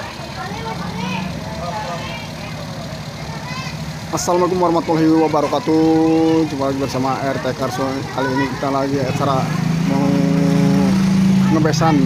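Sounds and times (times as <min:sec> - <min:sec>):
engine idling: 0:00.0 - 0:12.0
background voices: 0:04.0 - 0:12.0.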